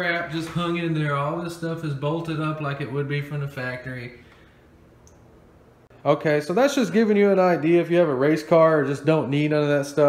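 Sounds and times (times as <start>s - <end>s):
faint click: 4.3s - 5.3s.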